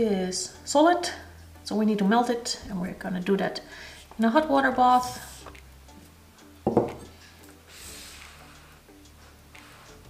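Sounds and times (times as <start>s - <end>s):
glass beaker clunk on countertop: 6.7s - 7.0s.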